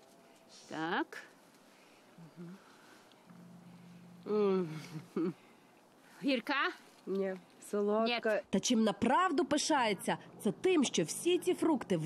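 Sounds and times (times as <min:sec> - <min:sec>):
soft vocal murmur: 0:02.1 - 0:03.1, 0:04.0 - 0:05.6.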